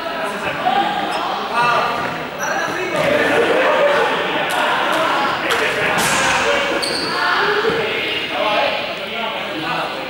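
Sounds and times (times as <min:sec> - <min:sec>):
students chattering: 0:00.0 - 0:10.0.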